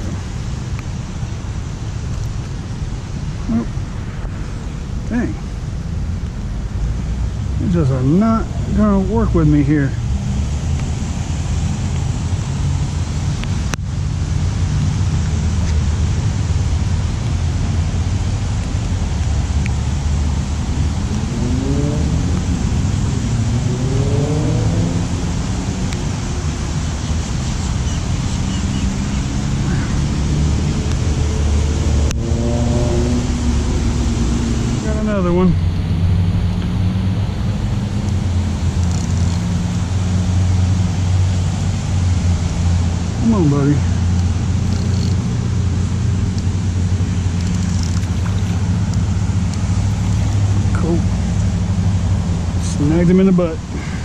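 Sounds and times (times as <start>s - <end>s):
road traffic rumble: 0.0s - 54.0s
vehicle engine accelerating: 6.7s - 54.0s.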